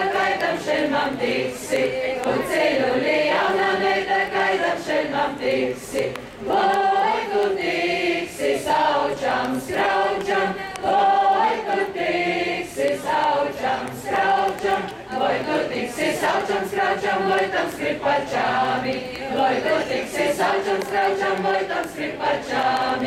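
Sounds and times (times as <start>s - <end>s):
group singing folk song: 0.0s - 23.0s.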